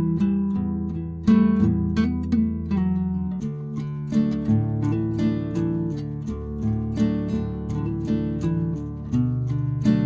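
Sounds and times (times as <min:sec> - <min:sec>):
acoustic guitar plucked notes: 0:00.0 - 0:10.0.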